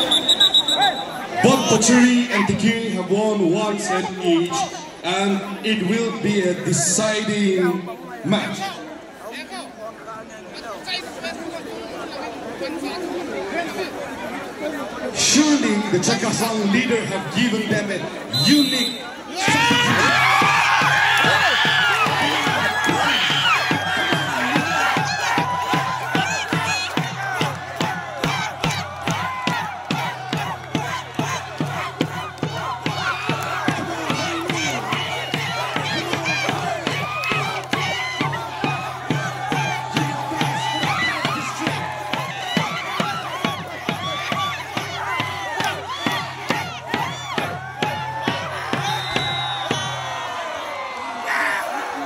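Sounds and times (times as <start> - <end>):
stadium crowd shouting and cheering: 0.0 - 52.0
rhythmic pulse of beats: 19.6 - 50.2.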